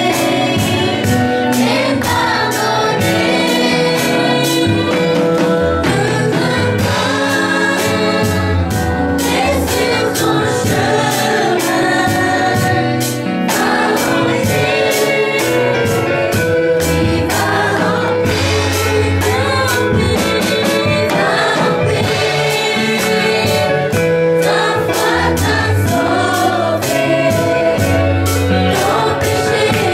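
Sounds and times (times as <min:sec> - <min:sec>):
children's choir singing: 0:00.0 - 0:29.9
instrumental accompaniment: 0:00.0 - 0:29.9.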